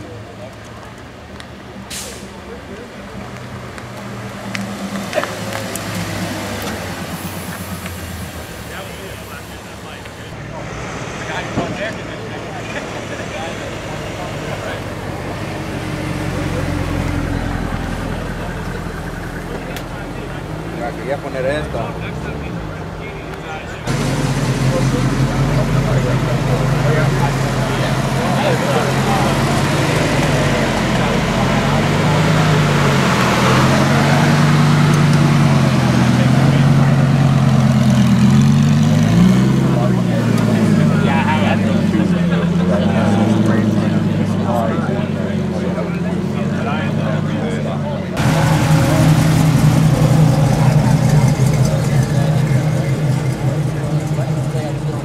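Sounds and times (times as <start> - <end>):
car engine idling: 0.0 - 55.0
people talking: 0.0 - 55.0
sports car engine revving: 23.8 - 55.0.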